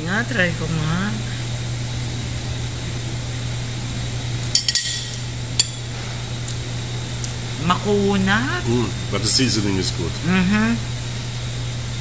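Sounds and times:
cutlery clinking on a plate: 4.5 - 5.8.

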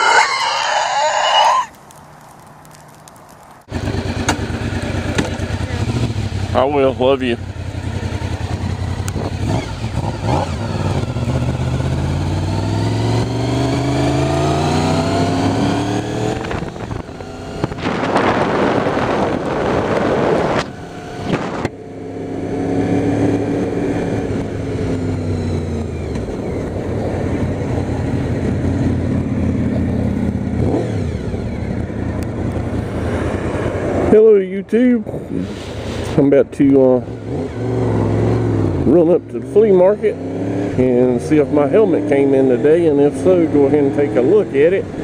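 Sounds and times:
motorcycle engine accelerating: 3.7 - 34.3, 35.0 - 45.0.

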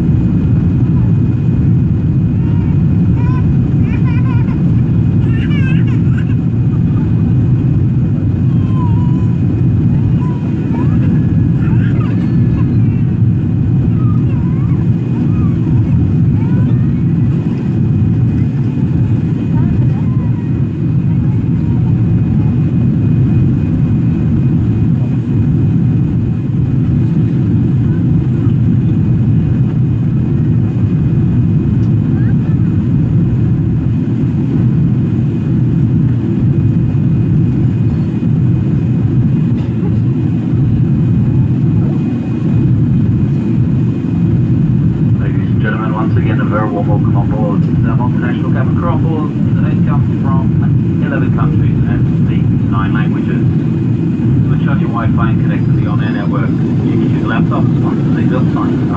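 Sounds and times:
jet cabin engine roar: 0.0 - 58.9.

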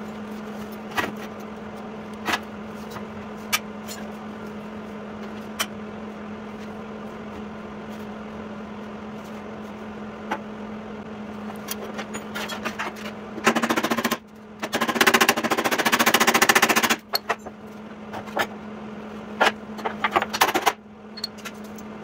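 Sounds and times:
steady low hum: 0.0 - 13.5, 16.4 - 22.0.

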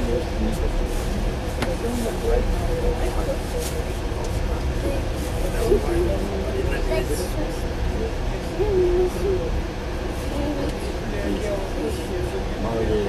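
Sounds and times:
train rumbling: 0.0 - 13.0.

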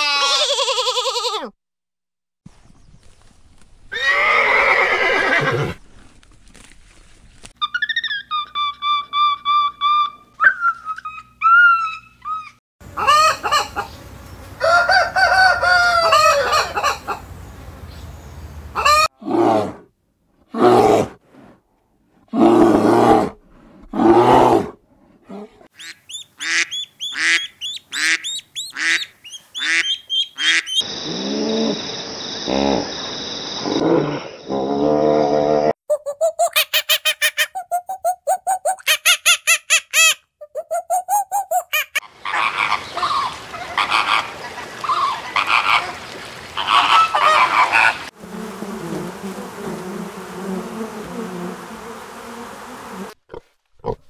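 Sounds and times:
chickens clucking: 12.9 - 14.0, 14.6 - 17.3.

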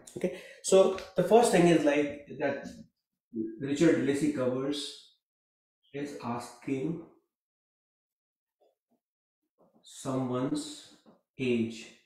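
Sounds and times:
man speaking: 0.6 - 2.8, 3.4 - 4.9, 6.0 - 7.1.

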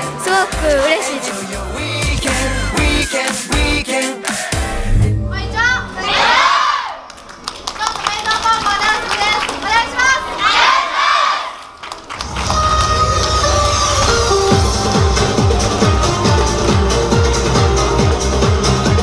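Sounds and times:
electronic dance music: 0.0 - 6.5
young voices shouting together: 6.0 - 7.1, 10.0 - 11.6.

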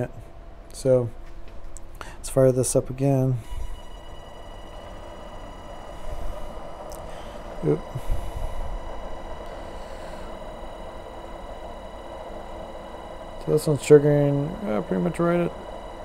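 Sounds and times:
electric motor whining: 3.4 - 16.0.

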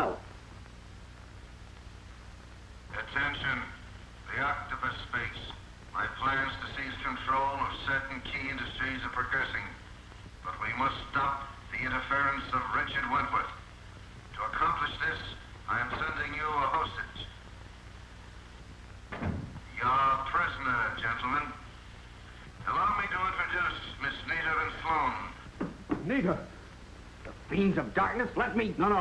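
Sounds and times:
steady low hum: 0.0 - 29.0
man talking: 2.9 - 9.8, 10.4 - 13.6, 14.3 - 17.3, 19.7 - 21.6, 22.6 - 26.5, 27.4 - 29.0.

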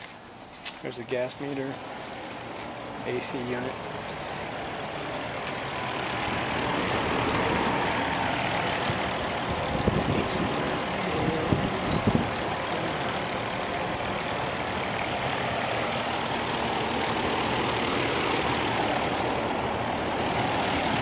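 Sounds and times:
air conditioner fan and compressor: 0.0 - 21.0.

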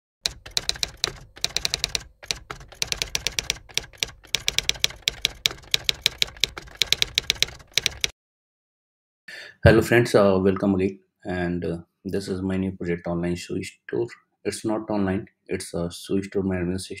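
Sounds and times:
typewriter keystroke clicks: 0.2 - 8.1.

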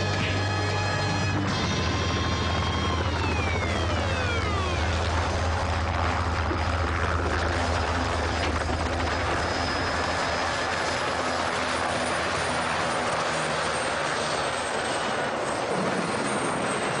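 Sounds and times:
helicopter rotor and engine running: 0.0 - 17.0
thin high whine: 8.8 - 11.2.

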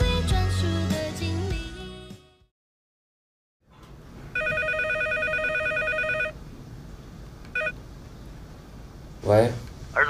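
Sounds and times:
telephone electronic trilling ring: 4.4 - 6.4.

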